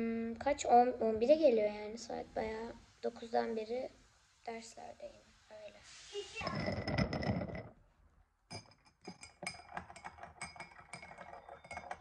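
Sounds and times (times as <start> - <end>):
spoon clinking against glass mug: 8.5 - 12.0.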